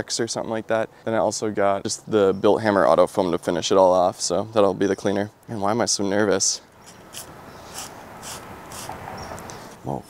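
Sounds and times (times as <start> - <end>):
spray bottle squirting: 6.8 - 9.4.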